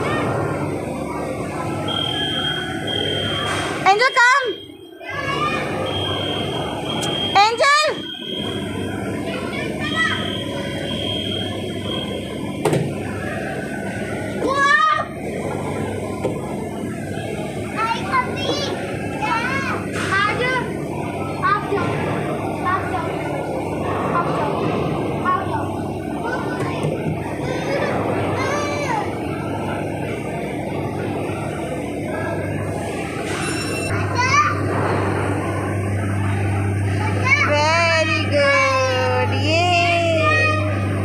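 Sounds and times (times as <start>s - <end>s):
children at play: 0.0s - 2.1s, 4.6s - 10.9s, 11.5s - 33.0s, 33.8s - 41.0s
low hum and hubbub: 0.0s - 41.0s
high steady tone: 1.6s - 12.6s
children calling and squealing: 4.9s - 10.9s, 25.2s - 29.9s.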